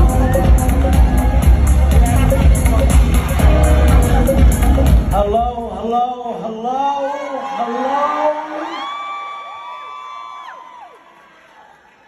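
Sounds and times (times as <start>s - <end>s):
audience cheering and whooping: 0.0s - 5.0s, 7.0s - 12.0s
music: 0.0s - 5.8s.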